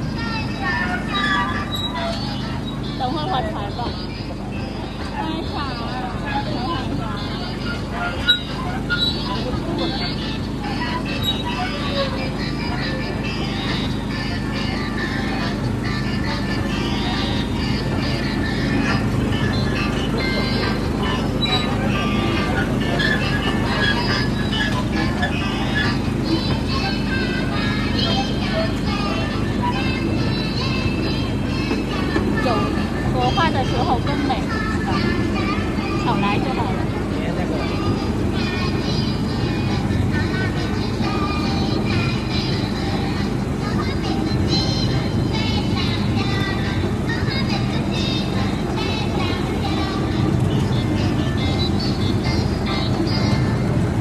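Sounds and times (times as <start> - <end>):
indistinct voices: 0.0 - 54.0
music: 0.0 - 54.0
small train humming: 0.0 - 54.0.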